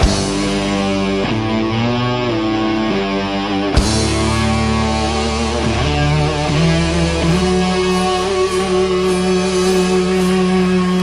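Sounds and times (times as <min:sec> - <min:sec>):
rock band instrumental: 0:00.0 - 0:11.0.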